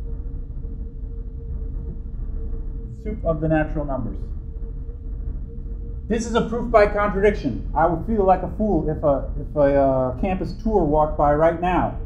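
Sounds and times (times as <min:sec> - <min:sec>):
faint even hum: 0:00.0 - 0:12.0
steady low rumble: 0:00.0 - 0:12.0.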